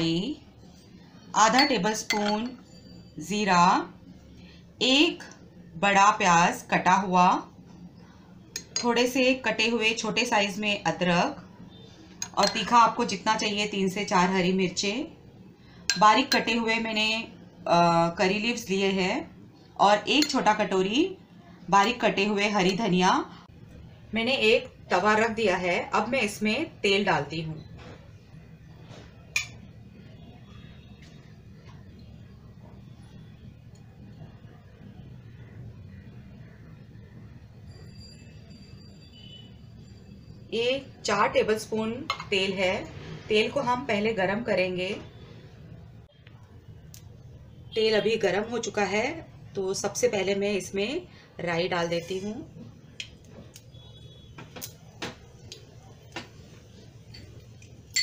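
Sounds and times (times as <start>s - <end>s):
low steady hum: 0.0s - 58.0s
spoon clinking: 1.5s - 3.1s, 12.2s - 12.8s, 20.2s - 20.5s, 29.4s - 29.6s, 57.1s - 58.0s.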